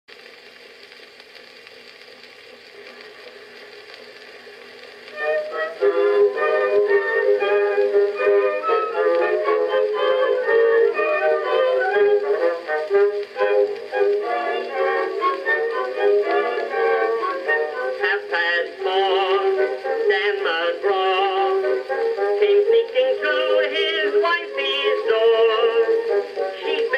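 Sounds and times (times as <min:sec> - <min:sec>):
music from phonograph record: 0:00.1 - 0:26.9
phonograph surface hiss: 0:00.1 - 0:26.9
phonograph machine running: 0:00.6 - 0:26.9.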